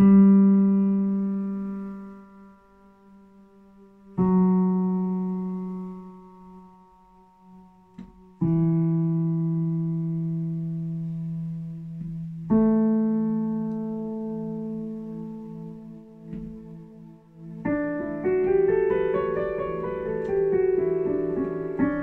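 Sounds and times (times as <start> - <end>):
piano chords ringing: 0.0 - 22.0.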